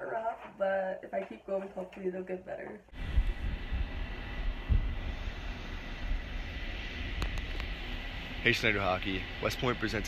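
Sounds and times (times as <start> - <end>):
wind buffeting microphone: 2.9 - 10.0
steady hiss: 3.0 - 10.0.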